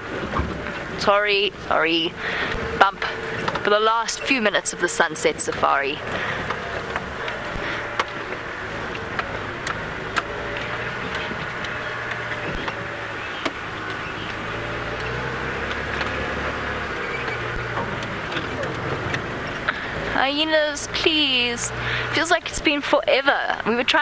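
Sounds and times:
vehicle knocks and rattles: 0.0s - 22.7s
vehicle engine hum: 0.0s - 24.0s.

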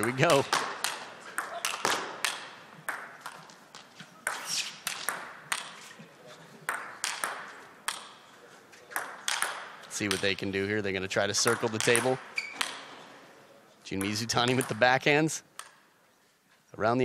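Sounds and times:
table tennis ball clicks: 6.7s - 8.2s, 9.0s - 10.4s.

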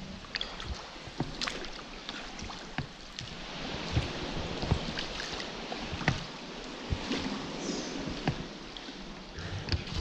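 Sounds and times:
sharp knocks and splashes: 0.0s - 10.0s
water lapping against a dinghy: 0.0s - 10.0s.

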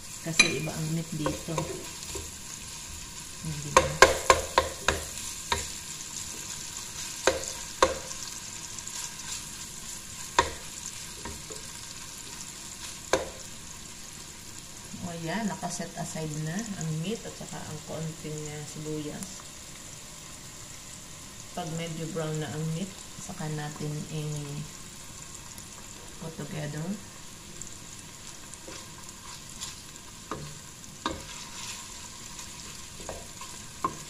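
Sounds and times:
meat sizzling in a pot: 0.0s - 34.0s
wooden spoon knocking pot: 3.8s - 5.7s.

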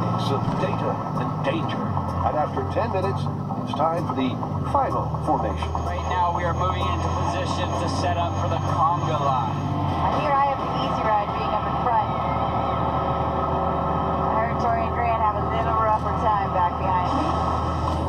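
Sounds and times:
indistinct talking: 0.0s - 18.0s
low engine drone: 0.0s - 18.0s.

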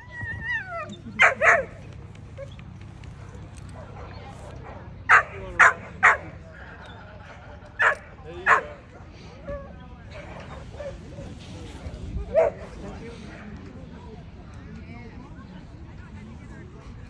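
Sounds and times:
dog yipping: 0.0s - 1.8s.

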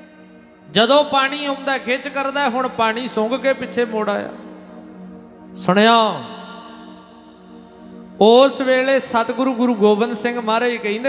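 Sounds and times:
keyboard drone chord: 0.0s - 11.0s.

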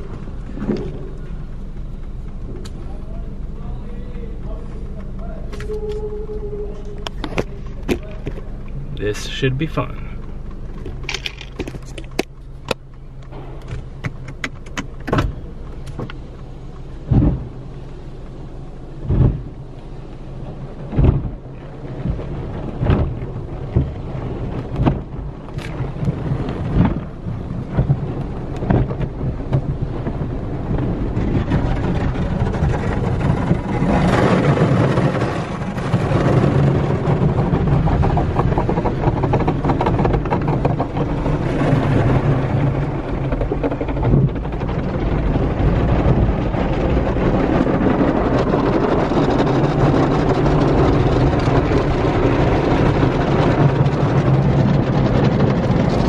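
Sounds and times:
low hum: 0.0s - 56.0s.

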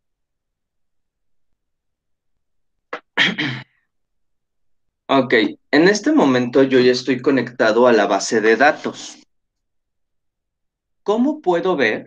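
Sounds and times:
man's voice: 5.1s - 9.2s.

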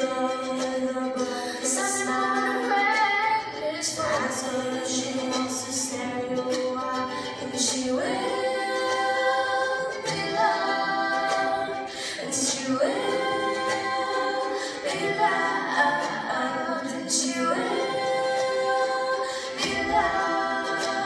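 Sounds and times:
ukulele accompaniment: 0.0s - 21.0s
women singing together: 0.0s - 21.0s.

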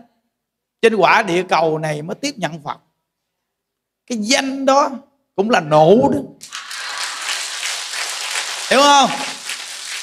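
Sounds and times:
audience clapping: 6.4s - 10.0s.

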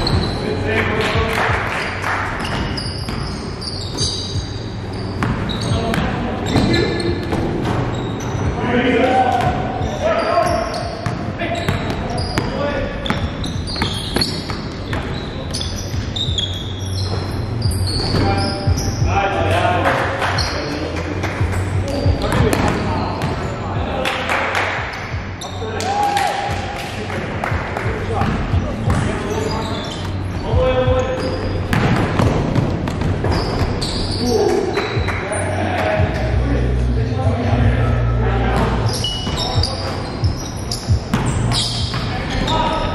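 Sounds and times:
basketball bouncing on gym floor: 5.2s - 8.5s, 10.8s - 19.0s, 22.1s - 23.5s, 27.6s - 29.3s, 31.2s - 35.0s, 38.6s - 42.9s.

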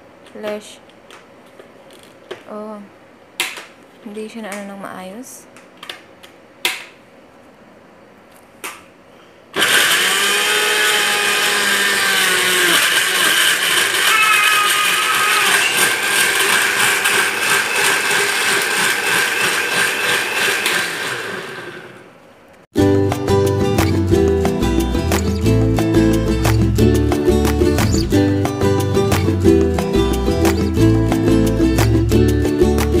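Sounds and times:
blender running: 9.6s - 22.1s.

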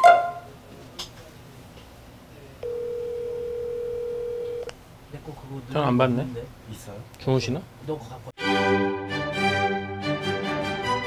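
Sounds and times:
telephone ringback tone: 2.6s - 4.6s.

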